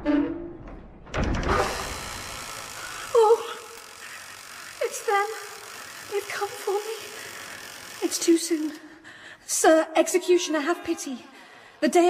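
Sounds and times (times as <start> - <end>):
woman moaning: 3.0 - 3.8.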